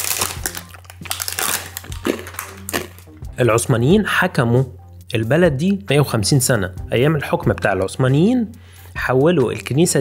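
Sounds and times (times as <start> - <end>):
paper crinkling and rustling: 0.0 - 3.0.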